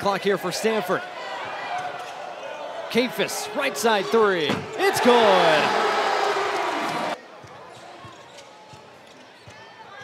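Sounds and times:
arena crowd cheering: 0:00.8 - 0:07.2.

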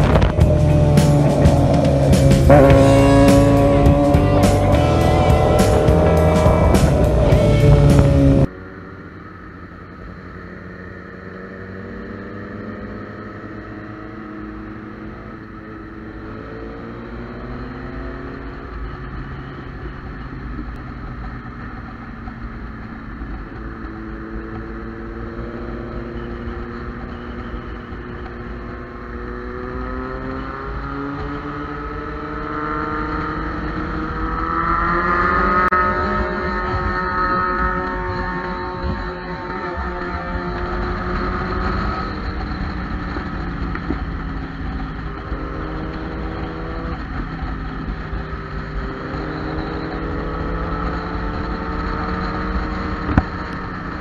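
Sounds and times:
music with a steady beat: 0:00.0 - 0:08.5
motorcycle engine revving: 0:00.0 - 0:54.0.

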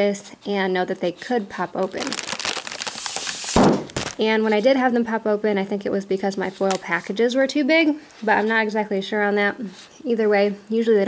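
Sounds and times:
plastic pouches crinkling: 0:01.8 - 0:04.3.

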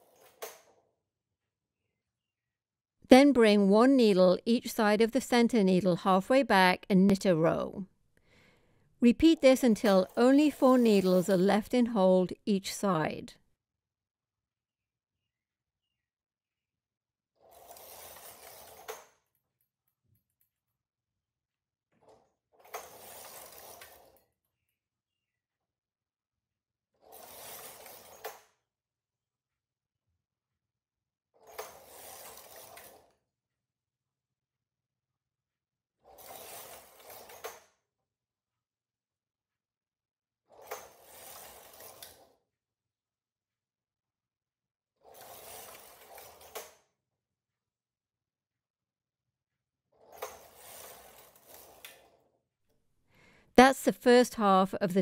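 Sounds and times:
knitting machine carriage rasping: 0:17.4 - 0:19.0, 0:22.7 - 0:24.2, 0:31.4 - 0:33.1, 0:36.0 - 0:37.6, 0:40.5 - 0:42.3, 0:45.0 - 0:46.8, 0:50.0 - 0:52.2
knitting machine carriage rattling: 0:31.4 - 0:33.0, 0:40.5 - 0:42.3, 0:45.0 - 0:46.8.

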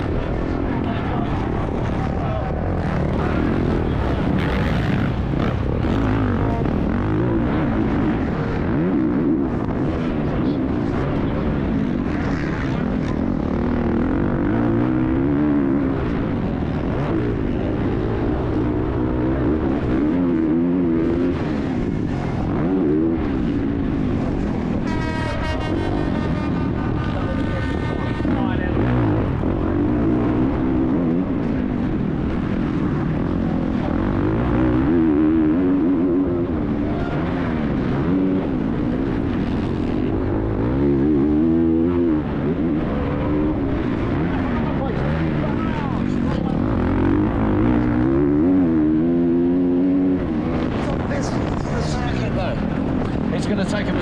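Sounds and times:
heavy wind noise: 0:00.0 - 0:54.0
motorcycle engine revving: 0:00.0 - 0:54.0.

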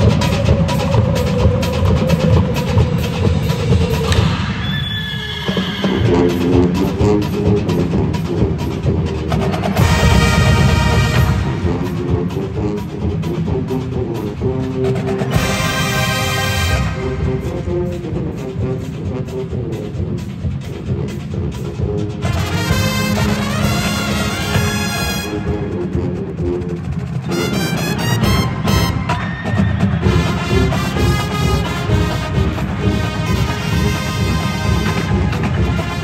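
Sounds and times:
brass band playing: 0:00.0 - 0:36.0
drumline percussion: 0:00.0 - 0:36.0.

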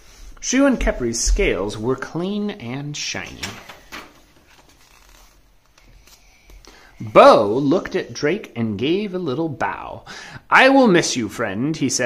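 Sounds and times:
soft paper scuffs: 0:03.6 - 0:06.6.

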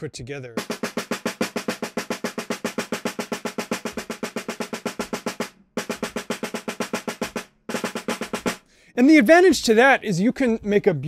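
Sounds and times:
snare drum fast single strokes: 0:00.6 - 0:08.7.

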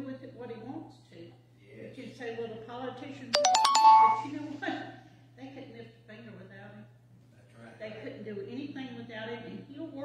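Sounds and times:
electronic ringtone chimes: 0:03.4 - 0:04.3.

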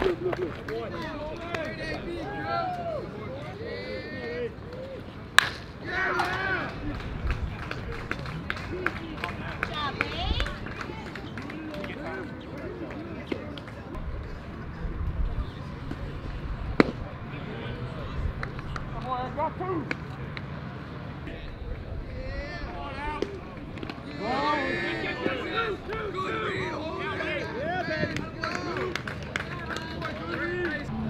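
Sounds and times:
people shouting and cheering: 0:00.0 - 0:05.1, 0:05.8 - 0:08.0, 0:22.0 - 0:31.0
bat cracking baseball: 0:05.4 - 0:06.4, 0:16.8 - 0:17.0.

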